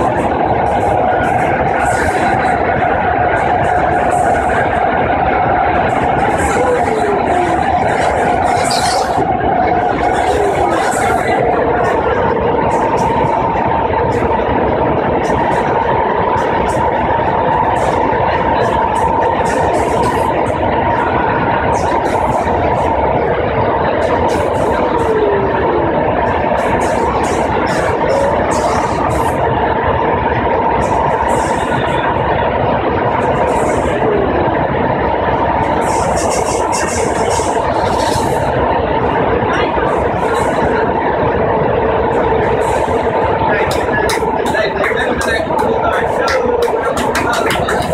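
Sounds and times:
steady whine: 0.0 - 47.9
train wheels rumbling on track: 0.0 - 47.9.

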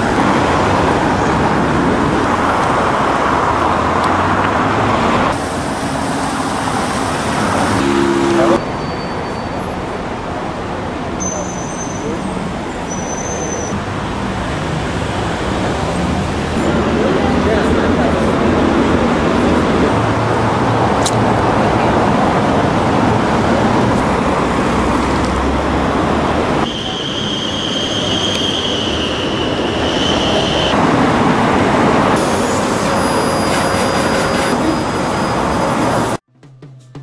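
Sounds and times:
heavy traffic passing: 0.0 - 36.3
high-pitched squeal: 5.3 - 9.8, 26.6 - 30.8, 32.2 - 36.2.

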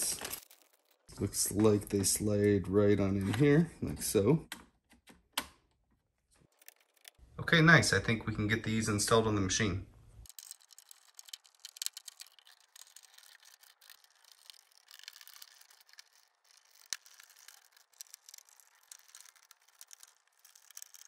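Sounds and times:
screwdriver clicking and scraping: 6.4 - 7.2.

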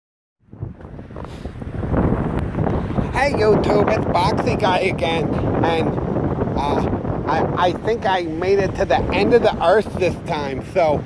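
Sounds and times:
wind buffeting microphone: 0.4 - 11.0.

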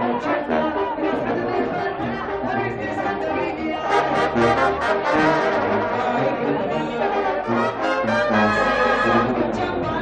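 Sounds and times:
brass band playing: 0.0 - 10.0
loud crowd chatter: 0.0 - 10.0.

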